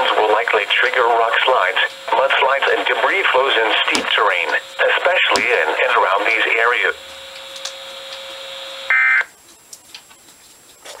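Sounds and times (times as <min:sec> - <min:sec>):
radio receiver hiss: 0:00.0 - 0:10.1
faint steady hum: 0:00.0 - 0:11.0.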